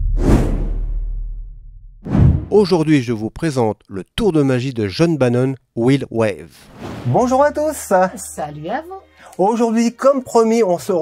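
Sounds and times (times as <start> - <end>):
deep rumble: 0.0 - 2.5.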